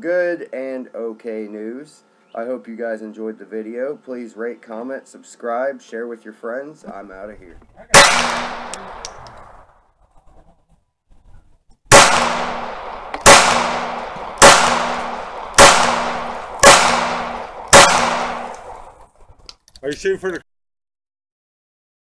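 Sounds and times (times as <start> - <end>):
handgun shots echoing: 7.9 - 9.6, 11.9 - 18.9.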